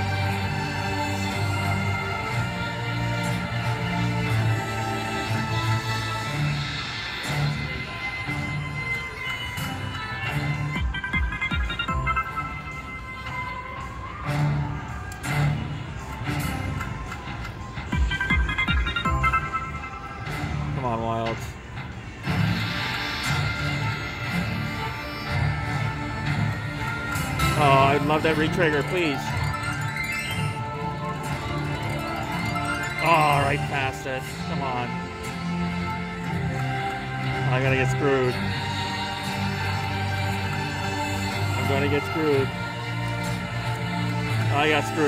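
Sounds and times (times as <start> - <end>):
slot machine bonus music: 10.8 - 13.0, 18.0 - 21.0, 25.9 - 45.0.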